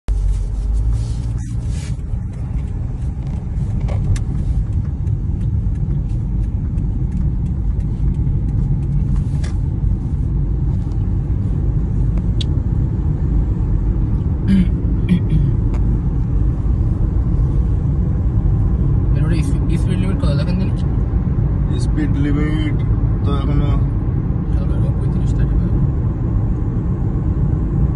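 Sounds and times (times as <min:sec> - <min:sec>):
car road and engine rumble: 0:00.0 - 0:27.9.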